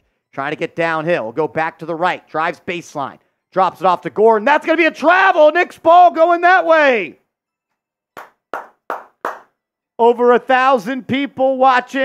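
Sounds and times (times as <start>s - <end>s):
man clapping hands: 8.1s - 9.6s.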